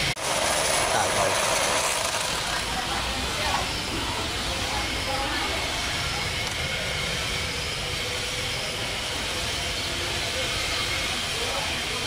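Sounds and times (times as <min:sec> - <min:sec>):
small motor whirring: 0:00.0 - 0:12.0
toy wheels rolling on wooden floor: 0:00.2 - 0:02.9.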